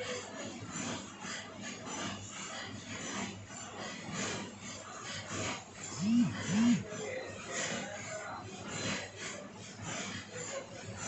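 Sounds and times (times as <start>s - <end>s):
faint background chatter: 3.6s - 11.0s.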